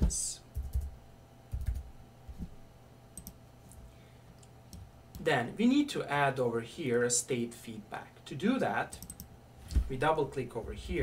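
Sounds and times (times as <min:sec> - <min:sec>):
keyboard and mouse clicking: 0:03.2 - 0:03.4, 0:08.9 - 0:09.3.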